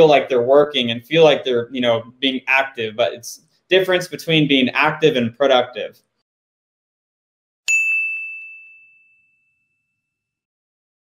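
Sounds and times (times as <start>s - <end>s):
bright bell ding: 7.7s - 10.2s.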